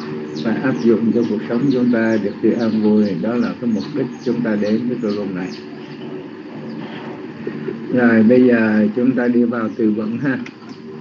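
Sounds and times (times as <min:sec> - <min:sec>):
audio feed hum and hiss: 0:00.0 - 0:11.0
faint steady tones: 0:00.0 - 0:11.0.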